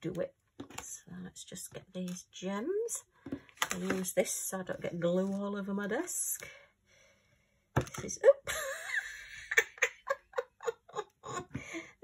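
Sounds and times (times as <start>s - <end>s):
woman speaking: 0.0s - 3.0s, 3.7s - 6.6s, 7.8s - 8.6s.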